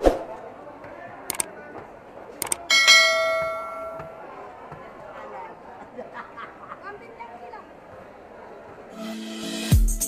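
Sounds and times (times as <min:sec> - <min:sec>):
quick clicks: 0:01.3 - 0:01.5, 0:02.4 - 0:02.7
notification bell ding: 0:02.7 - 0:04.2.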